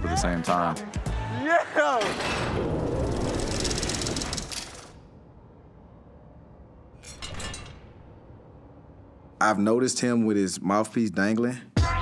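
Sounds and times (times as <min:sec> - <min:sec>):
rattling whoosh: 0:02.2 - 0:05.2.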